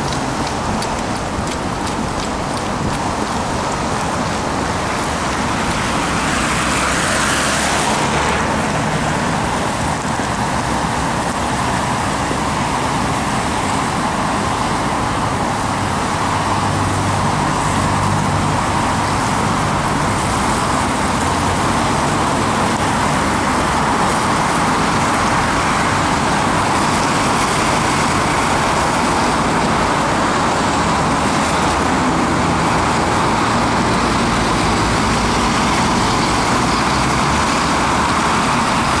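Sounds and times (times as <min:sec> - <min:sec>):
engine hum: 0:00.0 - 0:39.0
tyre noise on road: 0:00.0 - 0:39.0.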